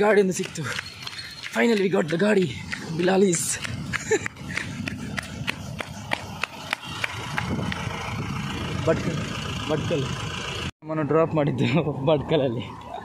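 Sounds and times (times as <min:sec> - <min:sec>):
truck engine running: 0:00.1 - 0:10.7
sharp ticks: 0:00.2 - 0:08.0.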